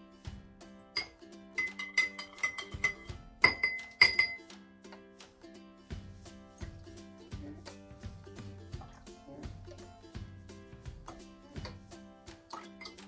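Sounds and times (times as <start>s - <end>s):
acoustic guitar music: 0.0s - 13.0s
drinking glasses clinking: 1.0s - 4.5s.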